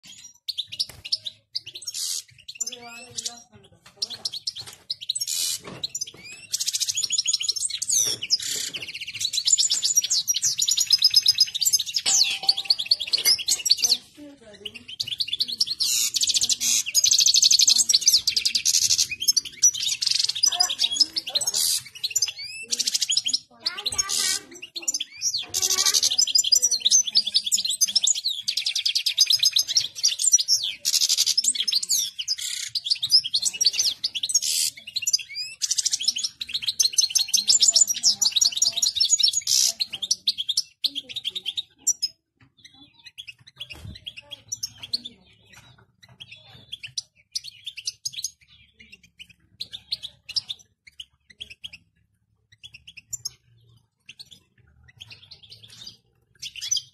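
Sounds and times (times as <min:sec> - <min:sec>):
bird chirps: 0:00.0 - 0:56.9
finch twittering song: 0:00.0 - 0:56.9.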